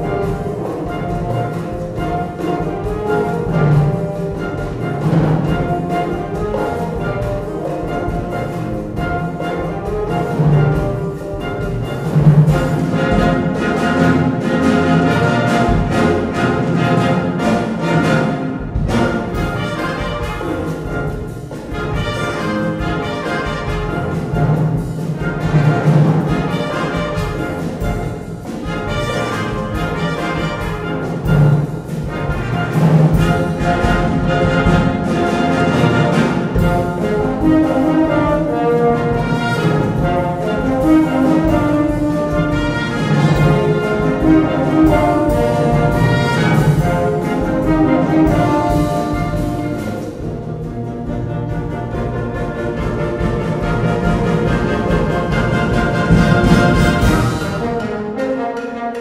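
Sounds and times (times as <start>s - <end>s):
steady percussion beat: 0.0s - 59.0s
wind band brass playing: 0.0s - 59.0s.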